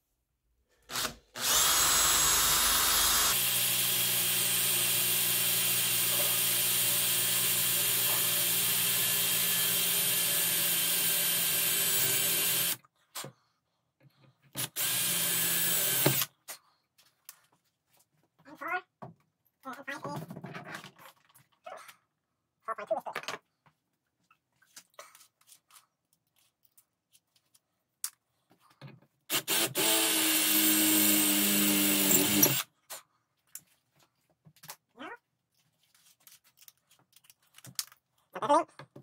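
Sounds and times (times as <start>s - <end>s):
cordless drill whining: 0.9s - 12.8s, 14.6s - 16.3s, 29.3s - 32.7s.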